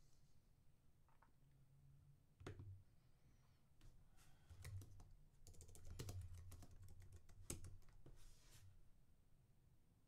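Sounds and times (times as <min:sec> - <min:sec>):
faint keyboard typing: 0:04.5 - 0:08.2.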